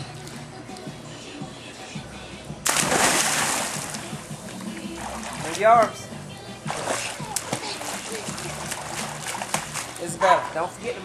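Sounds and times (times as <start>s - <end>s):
child splashing in pool water: 2.7s - 4.0s, 6.7s - 10.0s.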